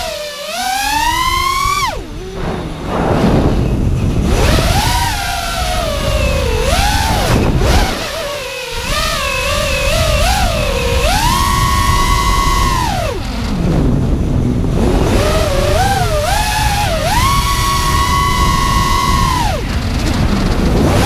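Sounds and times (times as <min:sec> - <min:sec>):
quadcopter motors whining: 0:00.0 - 0:21.0
wind on microphone: 0:00.0 - 0:21.0.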